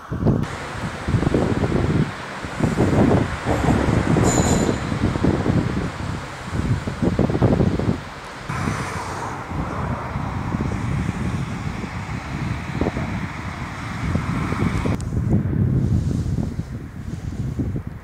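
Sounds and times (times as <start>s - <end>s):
steady outdoor rush: 0.0s - 18.0s
wind buffeting microphone: 0.0s - 18.0s.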